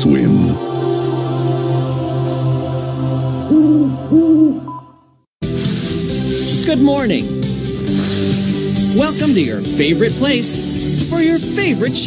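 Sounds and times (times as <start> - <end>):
owl hoots: 3.5 - 4.7
upbeat music: 4.7 - 12.0
low steady music: 4.8 - 12.0.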